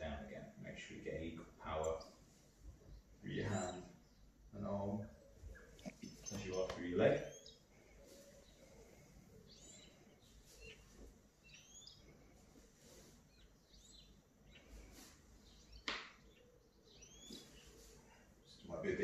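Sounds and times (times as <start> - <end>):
faint bird chirps: 1.6 - 19.0.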